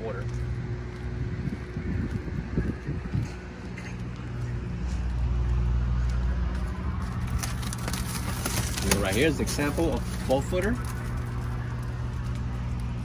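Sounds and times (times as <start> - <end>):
low motor hum: 0.0 - 13.0.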